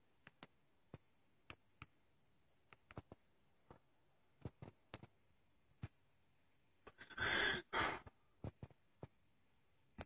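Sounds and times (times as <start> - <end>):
person sighing: 7.0 - 8.1.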